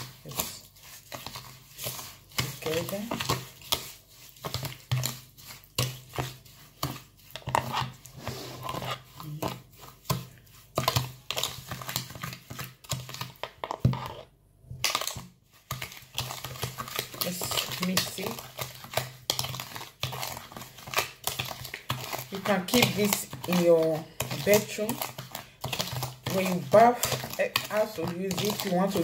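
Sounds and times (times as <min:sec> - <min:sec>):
metal spoon scraping in a bowl: 0:00.0 - 0:11.6, 0:13.2 - 0:14.3, 0:15.7 - 0:29.0.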